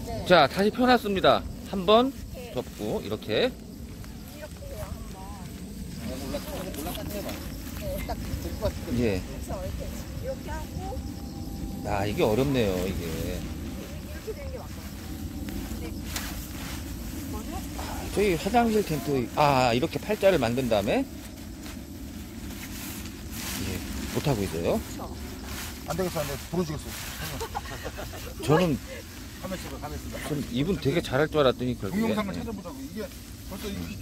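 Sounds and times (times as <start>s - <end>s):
low outdoor rumble: 0.0s - 34.0s
nylon fabric rustling: 3.8s - 31.2s.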